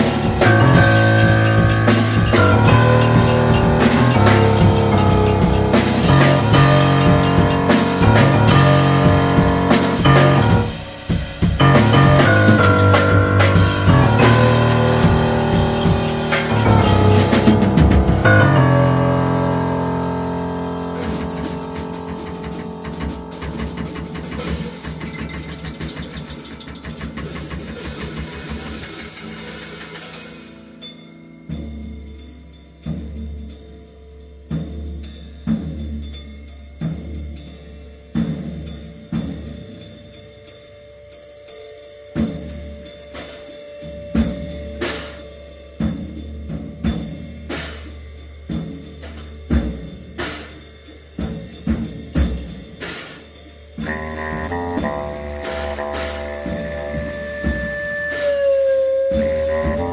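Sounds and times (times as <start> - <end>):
drum kit hits: 0.0 - 30.8, 51.2 - 59.9
jazz ensemble playing: 0.0 - 30.9, 51.2 - 59.9.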